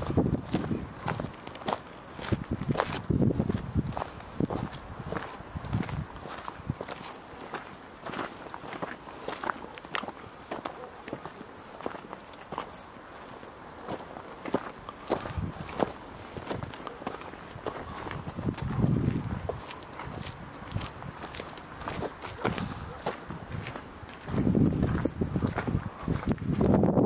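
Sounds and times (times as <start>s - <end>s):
footsteps on dirt path: 0.0s - 27.0s.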